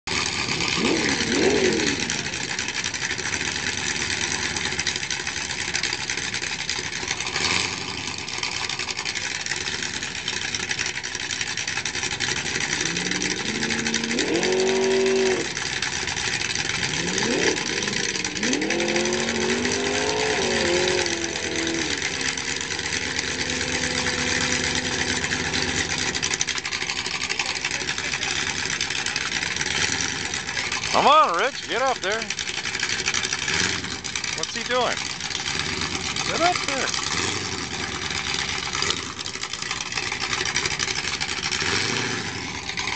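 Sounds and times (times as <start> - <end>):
car engine idling and revving: 0.0 - 42.9.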